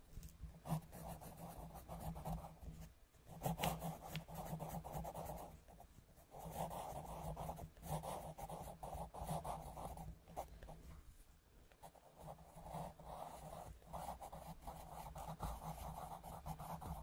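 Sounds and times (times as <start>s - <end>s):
pencil scratching on paper: 0.5s - 10.8s, 11.8s - 17.0s.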